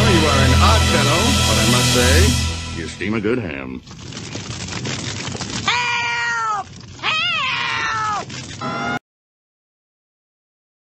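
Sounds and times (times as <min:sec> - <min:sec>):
dramatic orchestral music: 0:00.0 - 0:03.0.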